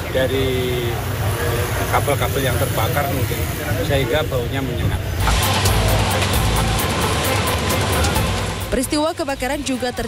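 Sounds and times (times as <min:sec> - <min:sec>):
music: 0:05.2 - 0:10.0.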